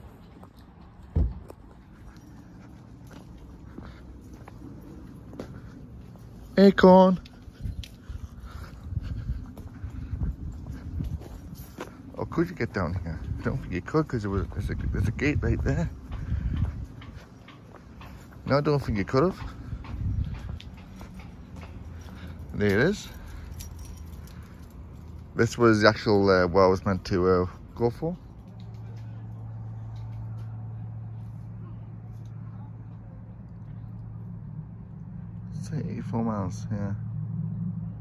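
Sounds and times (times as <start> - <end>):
outdoor background noise: 0.0 - 38.0
wind rumble on microphone: 7.2 - 17.4, 18.4 - 21.8
faint metallic clinks: 19.4 - 25.4.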